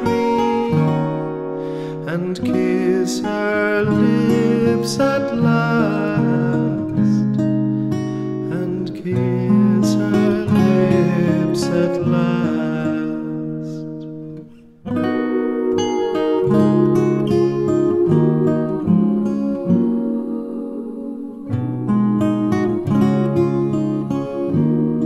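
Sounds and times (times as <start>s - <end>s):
acoustic guitar playing: 0.0s - 25.0s.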